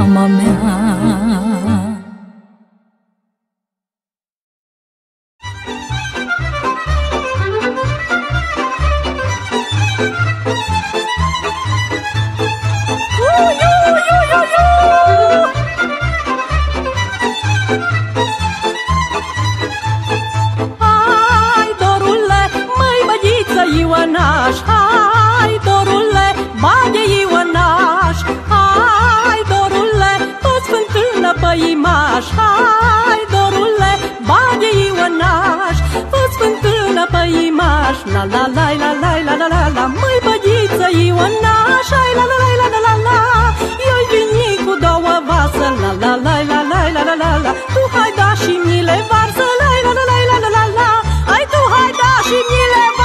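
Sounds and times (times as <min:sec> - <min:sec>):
folk band with violins and accordion: 0:00.0 - 0:02.3, 0:05.4 - 0:53.0.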